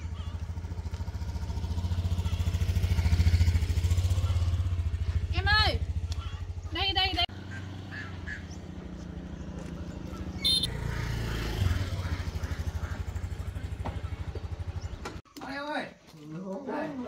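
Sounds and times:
motorbike engine idling: 0:00.0 - 0:15.2.

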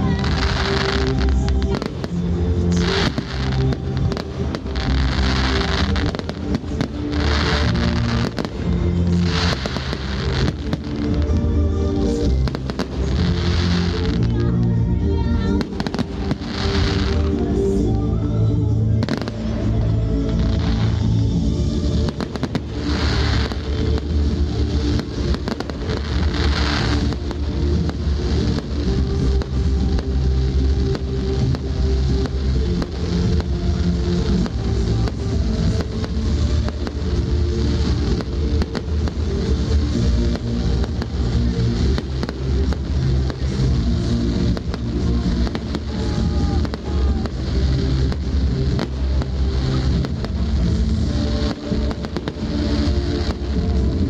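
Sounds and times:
fireworks bangs and crackles: 0:00.0 - 0:54.0
loud music: 0:00.0 - 0:54.0.

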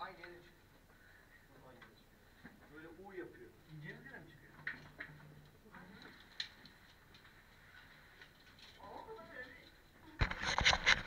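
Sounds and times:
faint clicks: 0:04.6 - 0:08.8.

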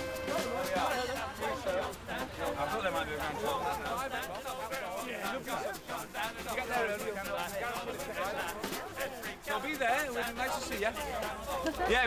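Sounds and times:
people's voices overlapping: 0:00.0 - 0:12.0.

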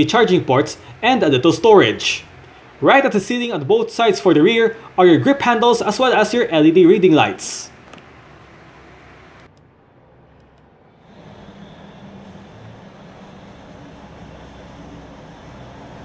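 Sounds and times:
low cabin hum: 0:00.0 - 0:16.0.

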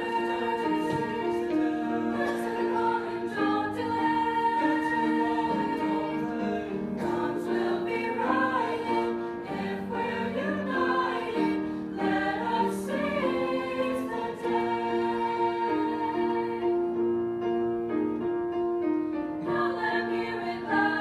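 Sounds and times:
group singing show tune: 0:00.0 - 0:16.8, 0:19.4 - 0:21.0.

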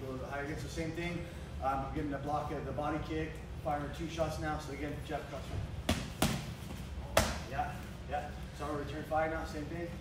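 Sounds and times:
kick smacking on gloves: 0:05.9 - 0:07.5.

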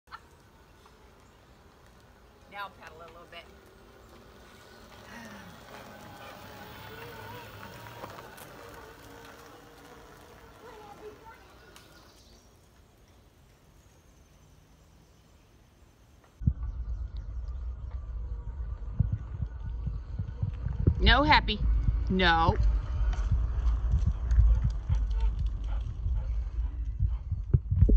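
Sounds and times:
faint voices: 0:04.4 - 0:12.2
loud low rumble: 0:16.4 - 0:27.9.

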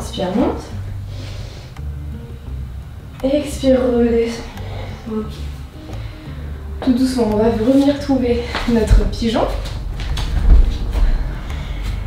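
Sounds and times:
body shifting on a yoga mat: 0:08.6 - 0:12.0
low thump: 0:10.0 - 0:11.2.

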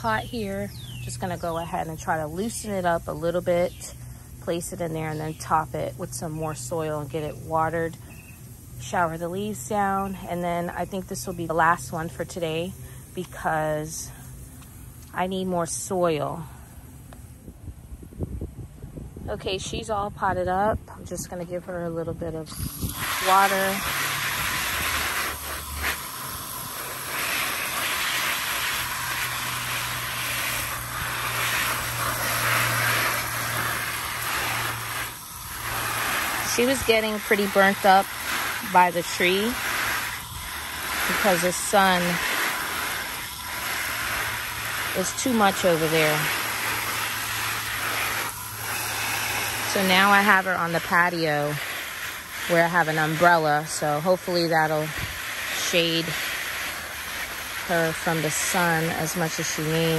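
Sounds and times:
garden hose spraying plant leaves: 0:00.0 - 0:17.4, 0:19.4 - 0:59.9
wind buffeting microphone: 0:17.4 - 0:21.4.

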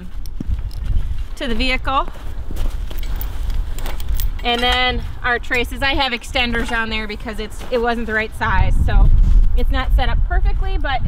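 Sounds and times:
footsteps on snow: 0:00.0 - 0:09.9
metal chain clinking: 0:02.8 - 0:07.5.

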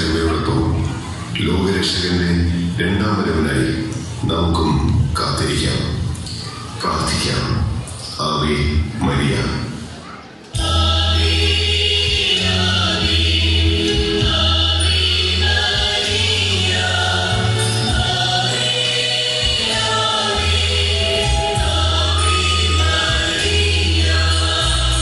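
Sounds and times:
choir singing a slow hymn: 0:10.5 - 0:25.0.

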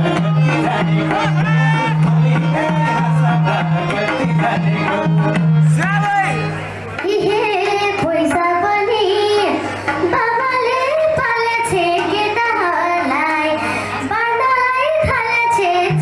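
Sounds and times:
girl singing into a microphone: 0:07.0 - 0:16.0.

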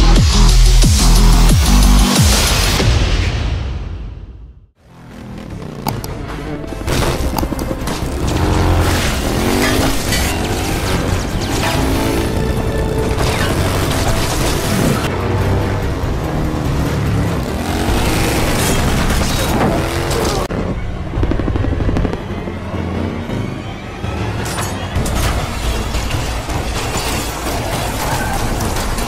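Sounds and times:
film music: 0:00.0 - 0:29.0
motorcycle engine revving: 0:04.8 - 0:24.4.

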